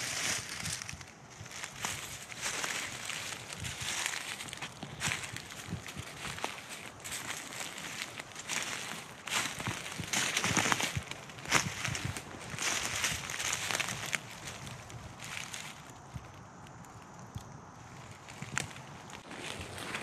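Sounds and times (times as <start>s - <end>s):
footsteps crunching through dry leaves: 0.0s - 16.2s, 17.9s - 20.0s.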